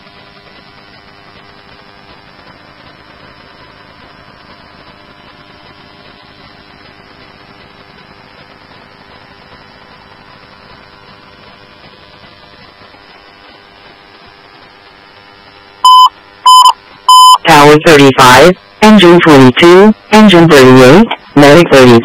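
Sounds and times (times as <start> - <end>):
faint hum: 0.0 - 22.0
radio static hiss: 0.0 - 22.0.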